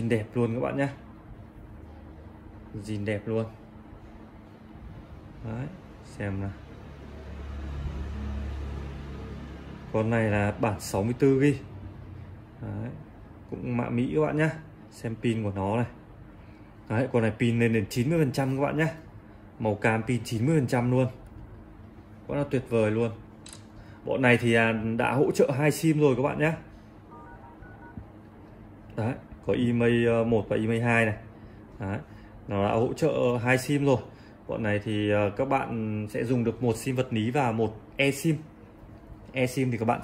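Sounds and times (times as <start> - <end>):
phone keypad dual-tone beeps: 27.1 - 28.0.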